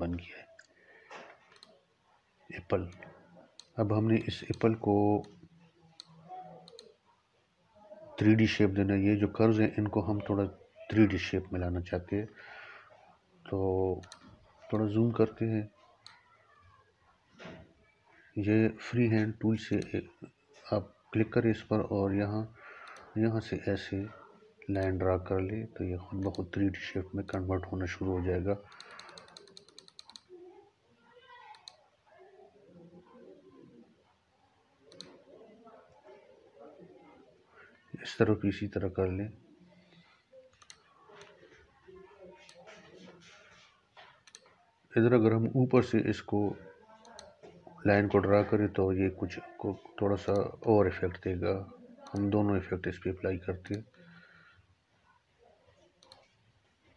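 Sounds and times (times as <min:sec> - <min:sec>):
computer mouse clicking: 0:01.5 - 0:01.8, 0:02.9 - 0:03.8, 0:04.4 - 0:07.0, 0:14.0 - 0:14.4, 0:22.8 - 0:23.1, 0:28.6 - 0:30.3, 0:31.5 - 0:31.8, 0:34.9 - 0:35.2, 0:40.4 - 0:41.4, 0:44.0 - 0:44.6, 0:47.0 - 0:47.5, 0:56.0 - 0:56.4.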